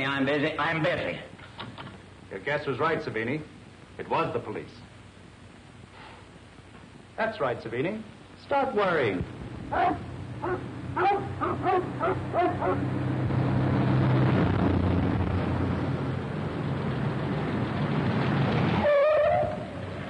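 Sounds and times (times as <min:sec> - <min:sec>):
dogs barking: 0:09.7 - 0:12.9
car driving over dirt: 0:13.0 - 0:20.0.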